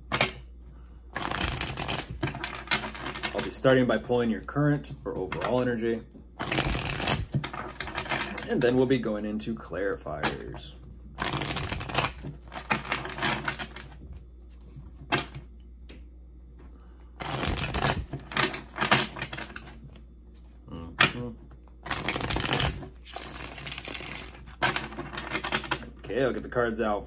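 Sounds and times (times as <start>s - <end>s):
cards riffling and rustling: 1.2s - 3.4s, 6.4s - 8.5s, 11.2s - 14.8s, 17.2s - 20.6s, 21.6s - 25.9s.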